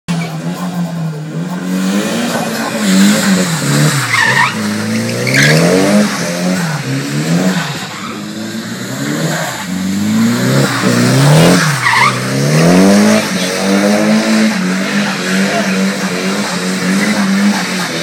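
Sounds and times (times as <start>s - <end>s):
car engine revving: 0.1s - 18.0s
tyre squeals: 4.0s - 5.9s, 11.6s - 12.4s.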